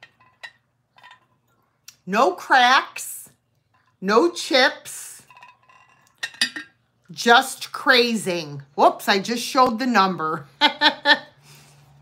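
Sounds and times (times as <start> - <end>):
porcelain teapot clinking: 5.3 - 6.8.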